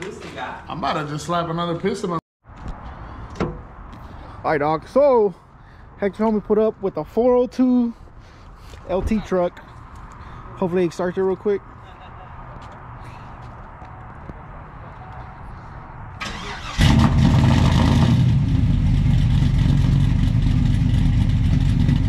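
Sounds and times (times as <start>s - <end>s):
engine cranking and idling: 16.2s - 22.0s.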